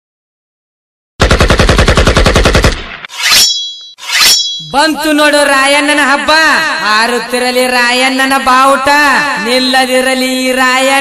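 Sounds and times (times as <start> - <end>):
machine-gun fire: 1.2 - 3.1
high steady ringing tone: 3.1 - 5.0.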